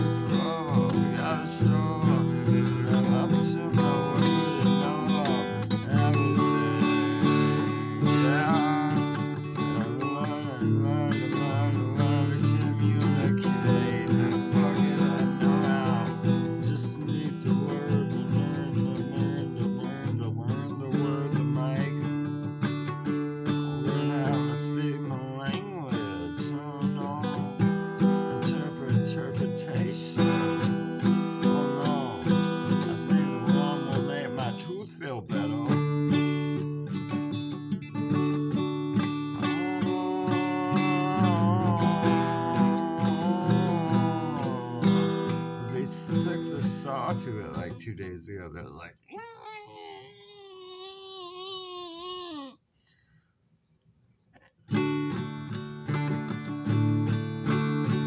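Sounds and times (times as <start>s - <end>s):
acoustic guitar strumming: 0.0s - 48.3s, 54.7s - 58.0s.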